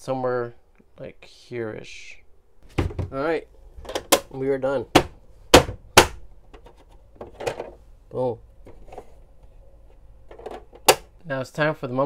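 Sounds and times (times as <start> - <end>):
plastic cover knocks: 2.7 - 3.1.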